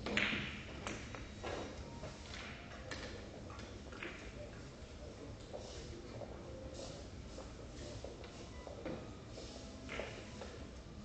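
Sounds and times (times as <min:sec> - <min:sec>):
billiard balls knocking together: 0:00.0 - 0:04.3.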